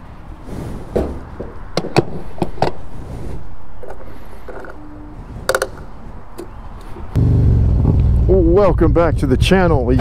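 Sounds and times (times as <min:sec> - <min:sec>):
motorcycle engine running: 0:07.2 - 0:08.6.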